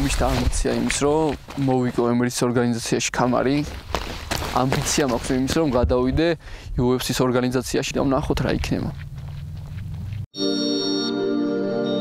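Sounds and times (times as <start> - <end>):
high held tone: 10.4 - 12.0.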